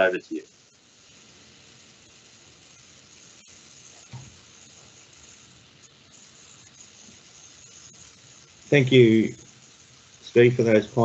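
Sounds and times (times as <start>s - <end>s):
microphone background hiss: 0.0s - 11.0s.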